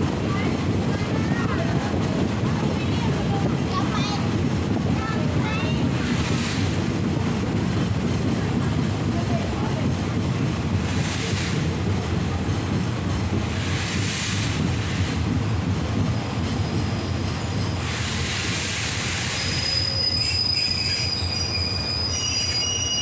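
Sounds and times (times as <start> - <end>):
train rumbling on rails: 0.0 - 23.0
train brakes squealing: 16.0 - 23.0.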